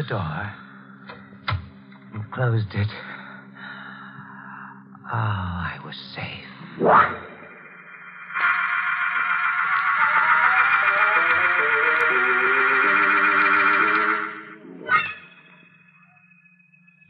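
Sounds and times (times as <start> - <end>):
canary warbling trill: 13.2 - 17.0.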